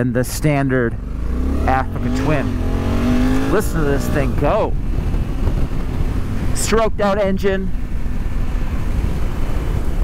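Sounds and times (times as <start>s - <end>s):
motorcycle engine running: 0.8s - 10.0s
wind rush on microphone: 2.4s - 10.0s.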